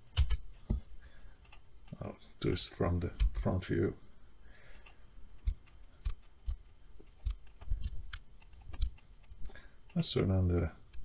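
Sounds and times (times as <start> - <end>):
keyboard and mouse clicks: 0.0 - 0.8, 4.8 - 10.1.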